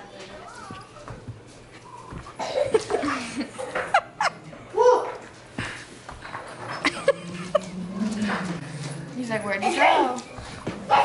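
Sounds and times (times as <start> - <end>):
people laughing: 2.7 - 4.6, 6.7 - 8.3.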